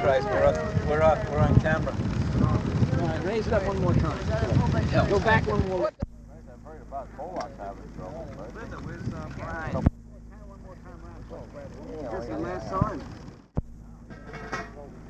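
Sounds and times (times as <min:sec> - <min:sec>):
people talking indistinctly: 0:00.0 - 0:15.0
steady low hum: 0:00.0 - 0:15.0.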